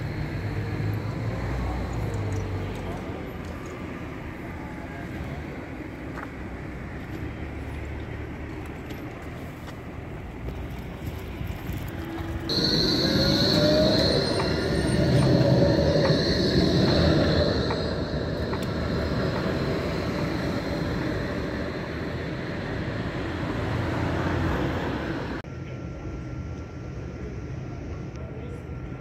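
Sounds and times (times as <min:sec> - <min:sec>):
rising whine and high squeal: 0:00.0 - 0:05.1, 0:12.0 - 0:25.4
tram wheels rumbling on rail: 0:00.0 - 0:25.4.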